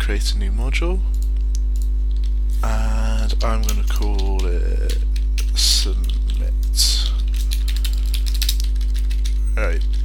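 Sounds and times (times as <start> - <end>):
electrical mains hum: 0.0 - 10.0
keyboard keystrokes clicking: 3.4 - 6.4, 7.2 - 10.0.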